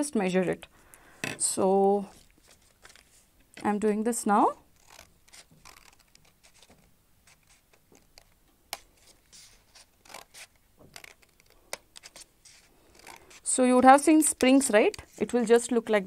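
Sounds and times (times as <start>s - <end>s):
scissors snipping paper: 4.8s - 6.7s, 9.8s - 15.4s.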